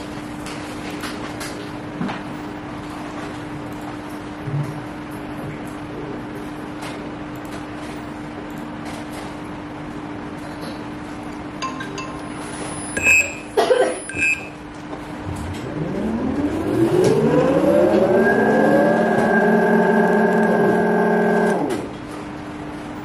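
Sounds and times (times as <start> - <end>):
steady low hum: 1.8 - 23.0
short high beeps: 12.8 - 14.6
motor whine spinning up: 15.2 - 21.9.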